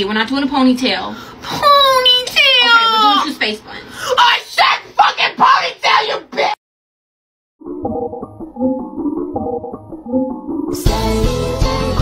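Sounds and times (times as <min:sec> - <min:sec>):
child wailing: 0:01.6 - 0:03.3, 0:04.2 - 0:06.6.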